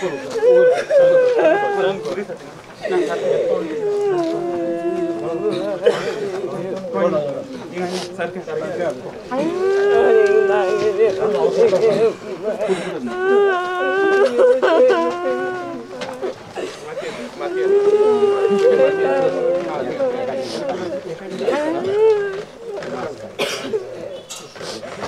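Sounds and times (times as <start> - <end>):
long held cry: 0.0 - 2.1, 2.8 - 7.4, 9.3 - 22.8
chatter of voices: 0.0 - 25.0
person wailing: 2.9 - 5.9, 9.3 - 11.8, 12.6 - 16.4, 17.5 - 22.5.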